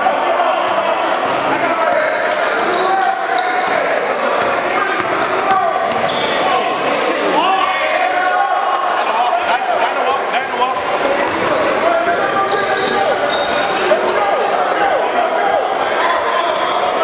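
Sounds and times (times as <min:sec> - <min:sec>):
indistinct echoing voices: 0:00.0 - 0:17.0.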